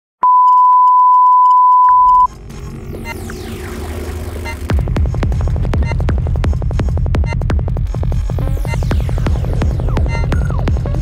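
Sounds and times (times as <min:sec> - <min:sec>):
falling synth sweeps: 0:02.2 - 0:05.0
electronic psytrance music: 0:02.2 - 0:11.0.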